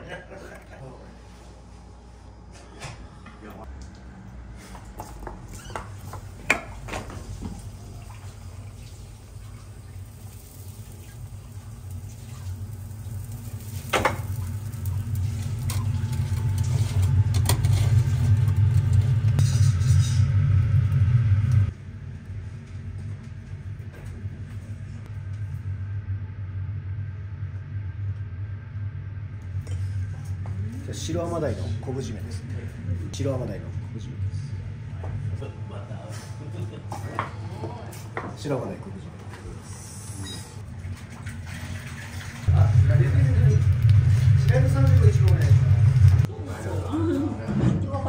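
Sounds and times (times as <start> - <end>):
grill low rumble: 0.0 - 48.0.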